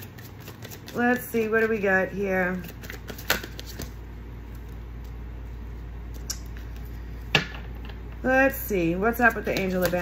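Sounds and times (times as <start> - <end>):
cards being shuffled: 0.0 - 1.9, 2.5 - 5.2, 9.2 - 10.0.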